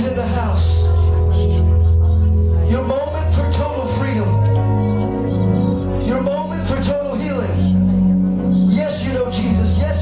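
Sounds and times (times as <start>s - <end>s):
keyboard chords over bass: 0.0s - 10.0s.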